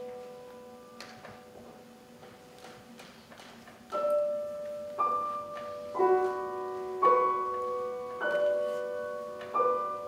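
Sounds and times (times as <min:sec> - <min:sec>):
piano note: 0:03.9 - 0:10.0.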